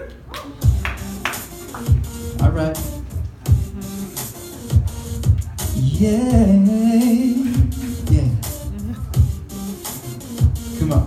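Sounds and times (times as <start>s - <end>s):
pop backing track: 0.0s - 11.0s
deep kick drum beat: 0.6s - 4.0s, 4.6s - 9.7s, 10.4s - 11.0s.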